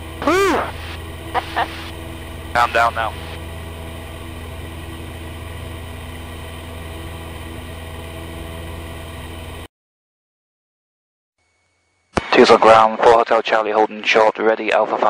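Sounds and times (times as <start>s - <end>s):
airplane engine droning in cabin: 0.0s - 9.7s.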